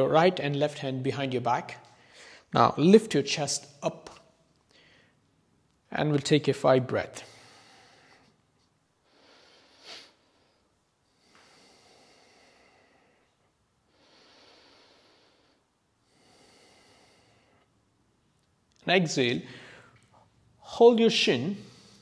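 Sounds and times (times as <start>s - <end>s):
man breathing slowly: 1.8s - 2.5s, 4.7s - 5.4s, 7.2s - 17.8s, 19.4s - 20.3s, 21.6s - 22.0s.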